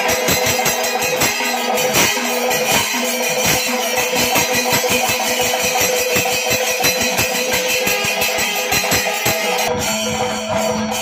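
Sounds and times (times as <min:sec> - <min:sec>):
hand cymbals clashing: 0:00.0 - 0:11.0
rapid drum strokes: 0:00.0 - 0:11.0.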